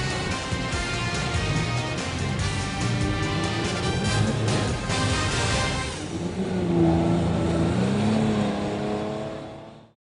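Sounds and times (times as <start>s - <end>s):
engine running and revving: 0.0s - 10.0s.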